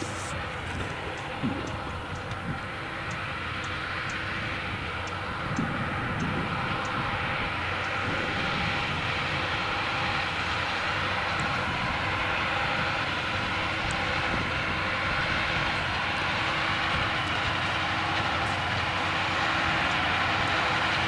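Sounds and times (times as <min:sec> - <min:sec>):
baler machinery drone: 0:00.0 - 0:21.0
tractor diesel engine under load: 0:00.0 - 0:21.0.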